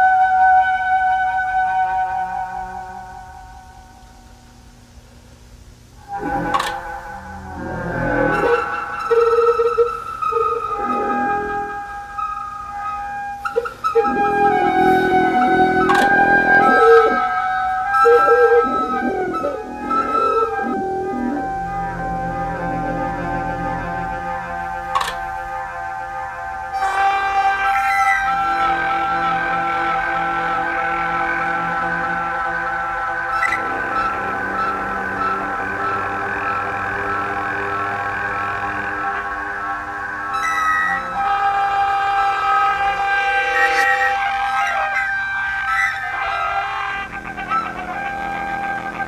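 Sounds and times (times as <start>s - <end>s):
buzzy drone chord: 0.0s - 49.0s
hose-blown steady high tones: 0.0s - 49.0s
low droning hum: 0.3s - 49.0s
short wavering notes: 5.9s - 49.0s.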